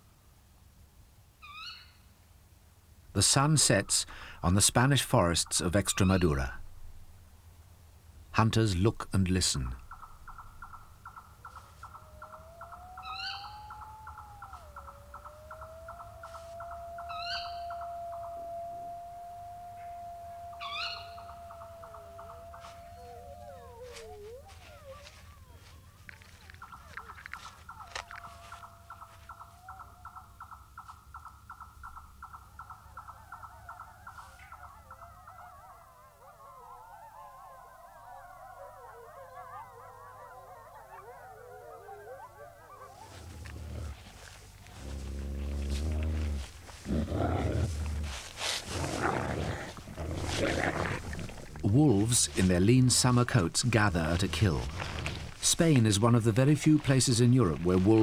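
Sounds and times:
pulsing insect chirr: 9.9s - 29.8s
wolf howling: 11.8s - 30.2s, 33.1s - 55.4s
chorus of wavering howls: 11.9s - 30.2s, 33.0s - 54.6s.

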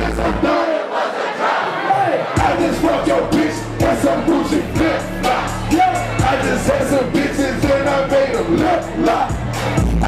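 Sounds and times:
crowd shouting along: 0.0s - 10.0s
hip hop backing track: 2.3s - 10.0s.

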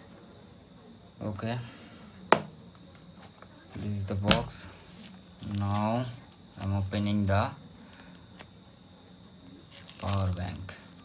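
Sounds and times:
plastic crinkling: 4.9s - 6.4s, 9.6s - 11.0s
plastic pouch rustling: 4.9s - 6.4s, 9.6s - 11.0s.

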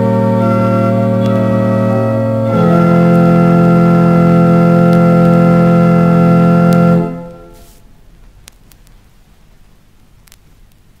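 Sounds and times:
pipe organ chord: 0.0s - 7.8s.

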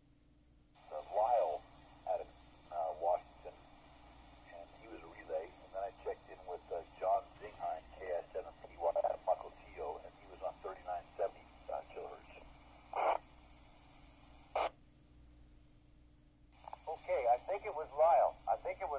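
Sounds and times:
voice over radio speaker: 0.8s - 13.2s, 16.6s - 18.9s
radio squelch tail: 0.8s - 13.8s, 16.6s - 18.9s.

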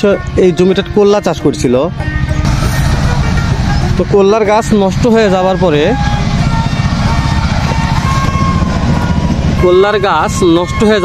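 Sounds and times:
man talking: 0.0s - 2.0s, 3.9s - 6.0s, 9.6s - 11.0s
wind buffeting microphone: 2.4s - 11.0s.

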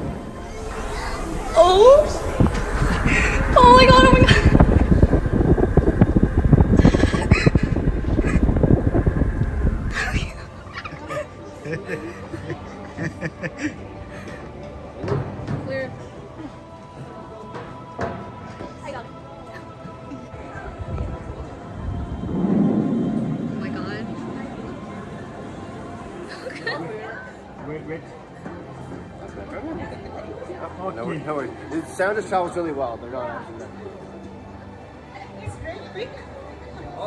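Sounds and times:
faint voices: 0.0s - 15.0s.

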